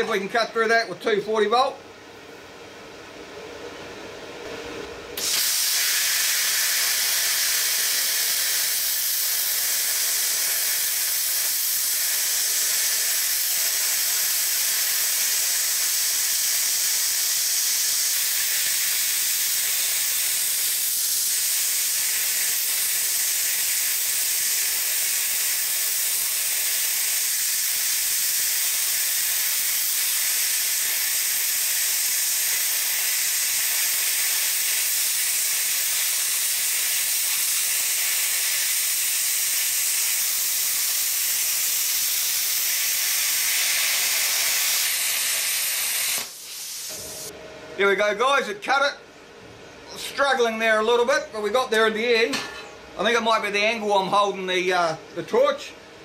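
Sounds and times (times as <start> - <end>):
plasma cutter arc hissing: 5.2 - 47.3.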